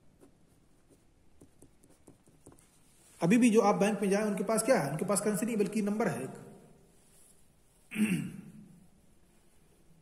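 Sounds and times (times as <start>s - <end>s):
marker scratching on paper: 0.0s - 3.1s.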